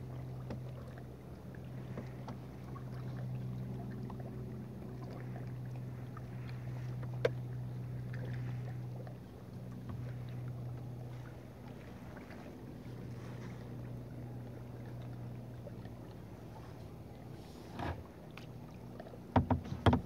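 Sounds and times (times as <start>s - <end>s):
steady low hum: 0.0s - 19.9s
paddle splashing in water: 0.0s - 20.0s.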